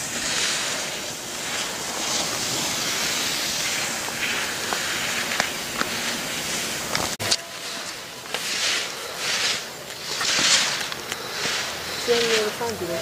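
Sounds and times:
skis scraping on snow: 0.0s - 13.0s.

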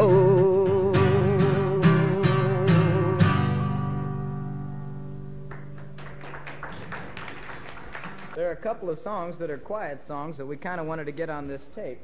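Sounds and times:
acoustic guitar chord strummed: 0.0s - 6.0s.

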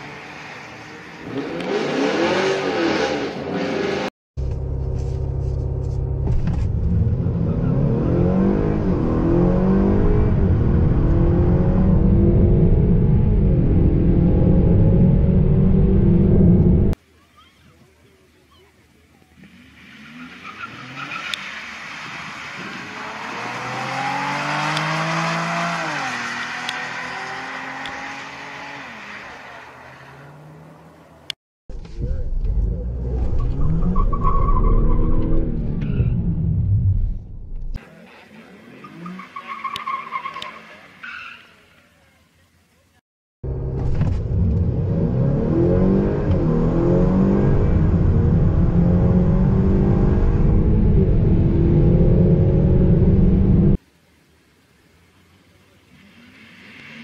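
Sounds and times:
car engine revving: 0.0s - 17.0s, 19.4s - 31.3s, 43.4s - 53.8s
drag racing car engines: 37.6s - 42.9s.

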